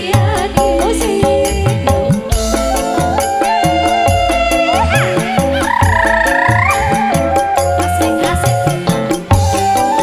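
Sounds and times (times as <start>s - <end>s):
hand drum beat: 0.0s - 10.0s
keyboard chords: 0.0s - 10.0s
high trilling melody: 2.2s - 10.0s.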